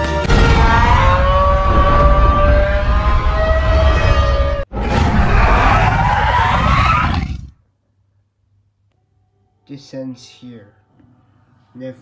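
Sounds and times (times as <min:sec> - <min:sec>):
monster roar with screech: 0:00.3 - 0:07.6.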